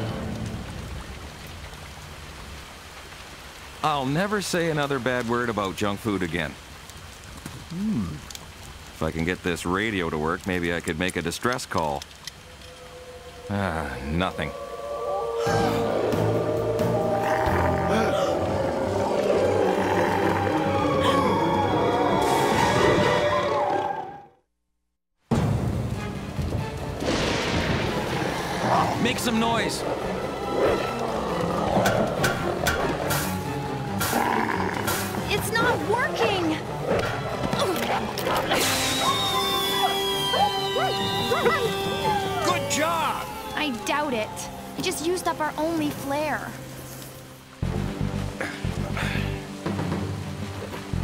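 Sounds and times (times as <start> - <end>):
dramatic background music: 12.1 - 23.9, 25.3 - 51.0
wild animals growling: 12.4 - 24.2, 28.0 - 42.8.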